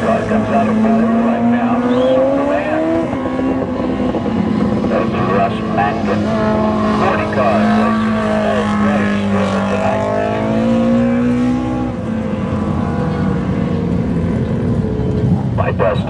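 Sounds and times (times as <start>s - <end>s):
race car engines: 0.0s - 16.0s.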